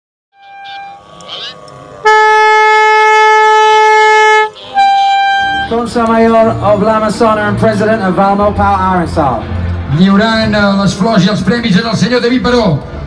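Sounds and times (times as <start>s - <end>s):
air horn blasts: 0.4s - 1.2s, 1.8s - 6.2s
man speaking over public address: 5.4s - 13.0s.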